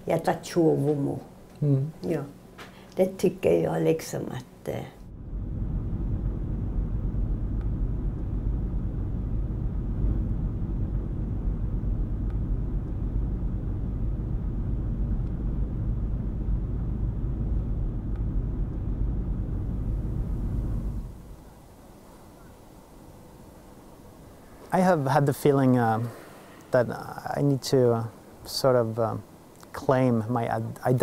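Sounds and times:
car engine and tyres rumbling: 0:05.0 - 0:21.4.

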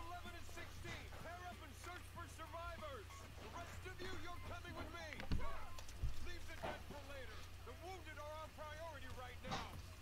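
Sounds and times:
faint dialogue in background: 0:00.0 - 0:10.0
steady low hum: 0:00.0 - 0:10.0.

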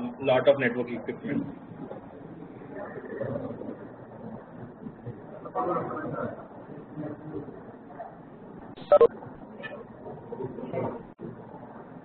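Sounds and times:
audio line hiss: 0:07.6 - 0:10.4.

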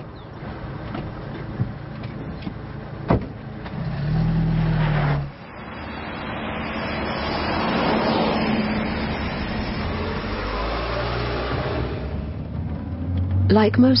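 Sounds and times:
car engine humming: 0:00.0 - 0:14.0
car driving past: 0:03.7 - 0:13.6.

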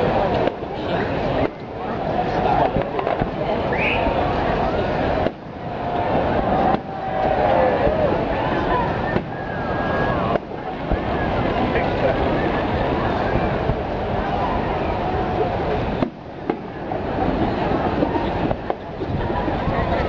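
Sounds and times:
fireworks banging: 0:00.0 - 0:14.6, 0:15.4 - 0:20.0
crowd talking: 0:00.0 - 0:20.0.

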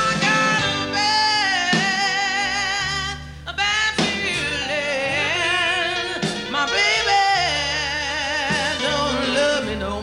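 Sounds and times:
live band playing: 0:00.0 - 0:10.0
woman singing blues: 0:00.0 - 0:10.0.

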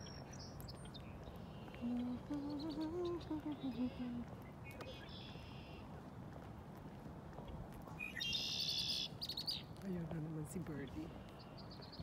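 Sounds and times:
outdoor background noise: 0:00.0 - 0:12.0
person humming: 0:01.8 - 0:04.2
small bird chirping: 0:08.0 - 0:09.8.

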